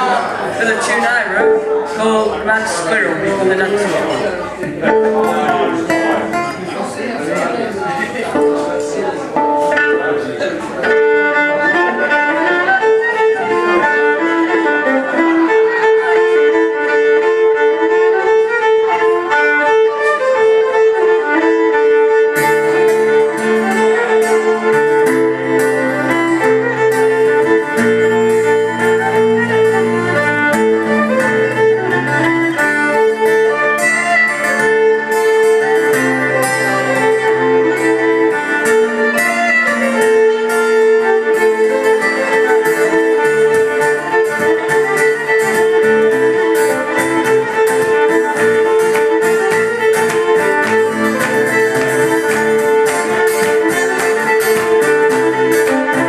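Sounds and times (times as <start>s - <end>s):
acoustic guitar strumming chords: 0.0s - 56.0s
fiddle playing folk melody: 0.0s - 56.0s.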